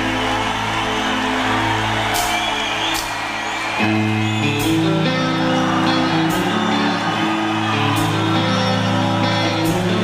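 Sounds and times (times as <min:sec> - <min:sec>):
hard rock band playing chords: 0:03.2 - 0:10.0.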